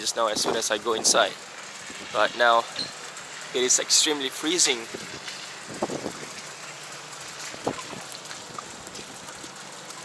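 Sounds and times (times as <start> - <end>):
rain on wet paving: 0.0 - 10.0.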